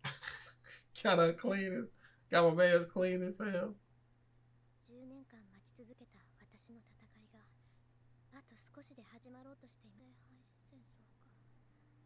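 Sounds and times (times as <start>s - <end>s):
low hum: 10.9s - 12.0s.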